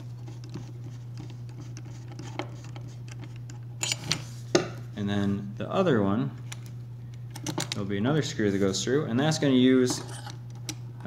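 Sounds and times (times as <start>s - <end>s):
steady low hum: 0.0s - 11.0s
screwdriver and metal parts clicking: 2.7s - 4.2s.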